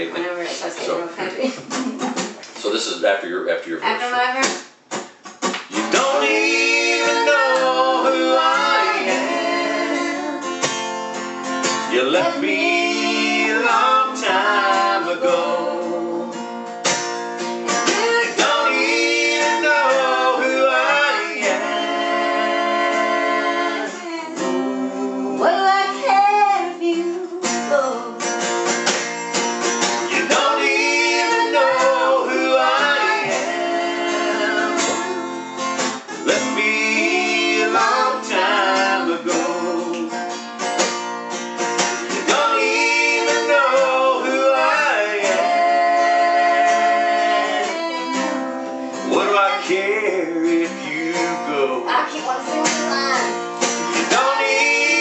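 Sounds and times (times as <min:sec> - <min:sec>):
acoustic guitar strumming: 0:03.8 - 0:55.0
man and woman singing: 0:05.7 - 0:10.7, 0:11.8 - 0:16.5, 0:17.7 - 0:28.3, 0:29.9 - 0:40.3, 0:42.0 - 0:55.0.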